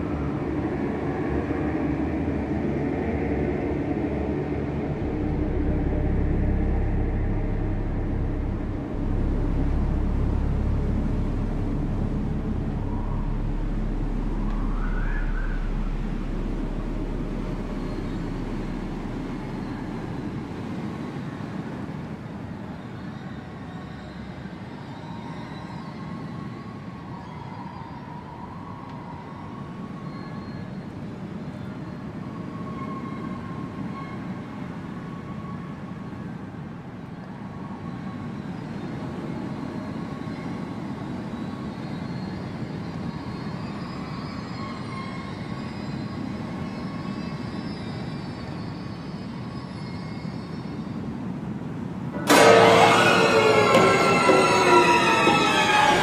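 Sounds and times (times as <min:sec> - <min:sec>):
low rumbling drone: 0:00.0 - 0:22.3, 0:52.2 - 0:56.0
faint wavering high tones: 0:04.6 - 0:21.7, 0:52.2 - 0:56.0.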